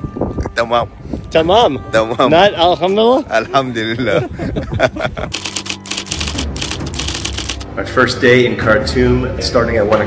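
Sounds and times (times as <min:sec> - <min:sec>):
typewriter keys clacking: 0:05.4 - 0:07.6.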